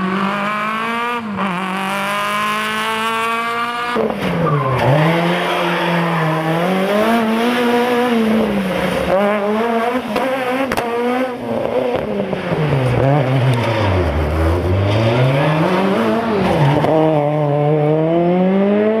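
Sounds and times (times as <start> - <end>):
rally car engines revving: 0.0 - 19.0.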